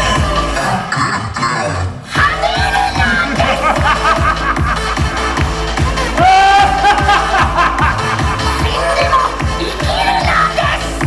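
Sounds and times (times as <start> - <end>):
kick-drum beat: 0.0 - 0.8, 2.2 - 11.0
electronic dance music: 0.0 - 11.0.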